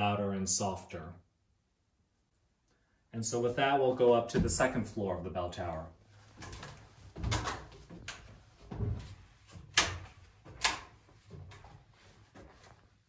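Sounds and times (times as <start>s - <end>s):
footsteps on wooden ladder: 6.3s - 13.0s.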